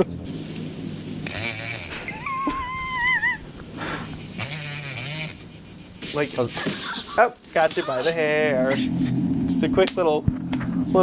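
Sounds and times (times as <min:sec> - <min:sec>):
low hum: 0:00.0 - 0:07.1, 0:08.0 - 0:11.0
scattered movie sounds: 0:00.0 - 0:10.0
high wavering wail: 0:01.9 - 0:04.6.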